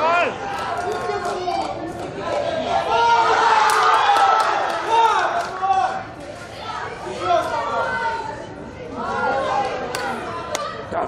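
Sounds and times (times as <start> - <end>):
voices shouting over one another: 2.4 - 10.9.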